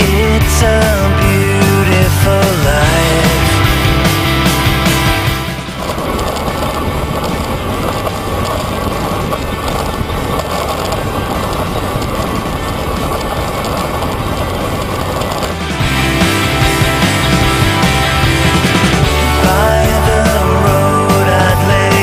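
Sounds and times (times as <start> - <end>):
tyres rolling on asphalt: 0.0 - 22.0
wind noise: 0.0 - 22.0.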